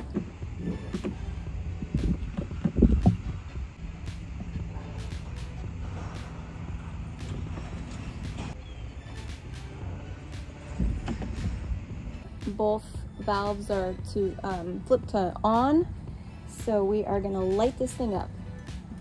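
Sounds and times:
low rumble: 0.0s - 19.0s.

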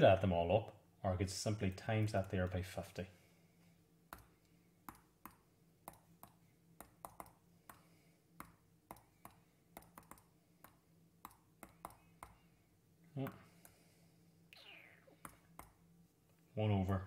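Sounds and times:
faint electrical hum: 0.0s - 17.0s
computer mouse clicks: 8.4s - 12.4s.

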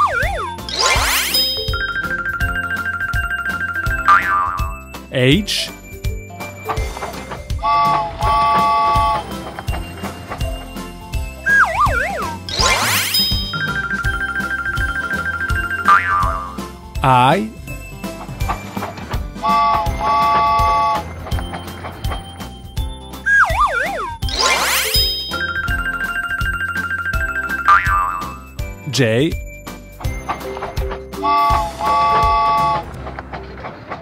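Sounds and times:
cartoon sliding sound effect: 0.0s - 1.8s, 11.5s - 13.8s, 23.3s - 25.7s
children's cartoon music: 0.0s - 34.0s.

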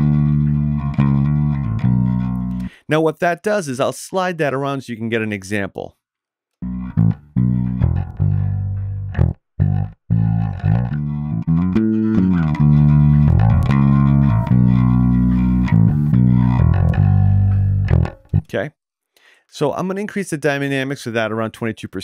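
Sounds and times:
electric bass guitar line: 0.0s - 2.8s, 6.6s - 18.6s.

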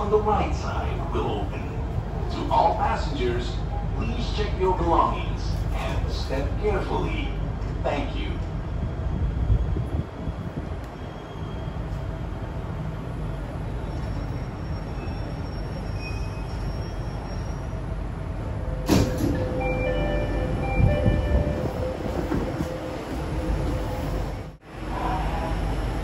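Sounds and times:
train carriage rumbling: 0.0s - 26.0s.

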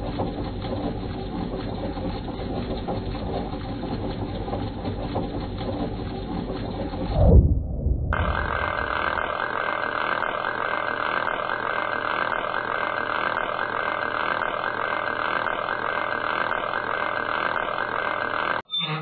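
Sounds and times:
gears turning with mechanical whir: 0.0s - 7.2s, 8.2s - 19.0s.

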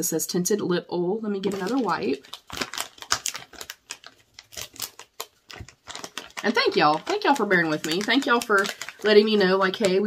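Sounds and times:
plastic packet crinkling: 1.4s - 10.0s.

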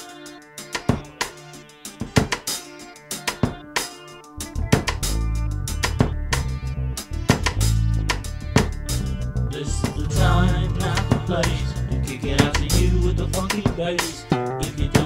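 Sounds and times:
drum kit beat: 0.0s - 15.0s
guitar: 0.0s - 15.0s
deep bass line: 4.4s - 15.0s.

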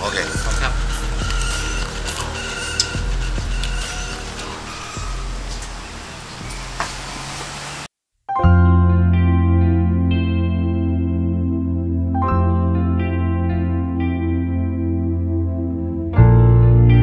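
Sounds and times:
high steady tones: 0.0s - 6.3s
soft instrumental music: 0.0s - 6.6s, 8.3s - 17.0s.

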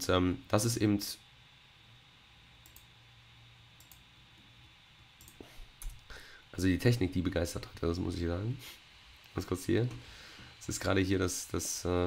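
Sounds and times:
faint clicks: 3.8s - 4.0s.

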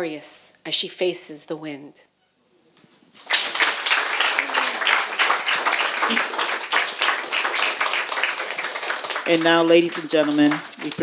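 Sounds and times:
audience applauding: 3.2s - 11.0s.

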